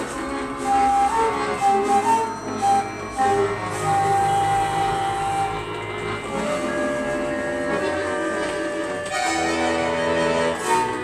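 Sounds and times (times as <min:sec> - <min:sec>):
accordion chords: 0:00.0 - 0:11.0
bamboo flute long note: 0:00.5 - 0:11.0.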